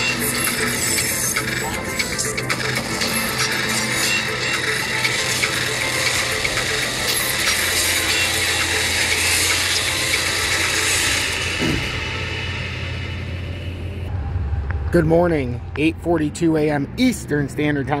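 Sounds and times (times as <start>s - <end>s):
intro music: 0.0s - 17.5s
steady low drone: 0.0s - 18.0s.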